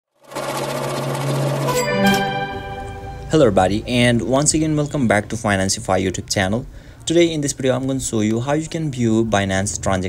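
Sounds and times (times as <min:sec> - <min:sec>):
rapid electronic buzzing: 0:00.2 - 0:02.5
low hum: 0:00.2 - 0:04.4
sustained musical tone: 0:00.2 - 0:05.0.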